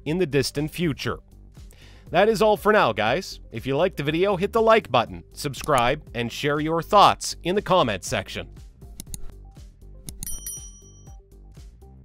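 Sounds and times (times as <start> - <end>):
background music with steady beat: 0.0 - 12.0
bright high bell: 10.2 - 11.2.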